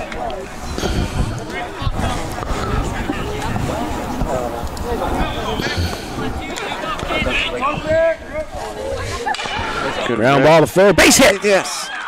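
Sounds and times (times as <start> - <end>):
people chattering and calling out: 0.0 - 12.0.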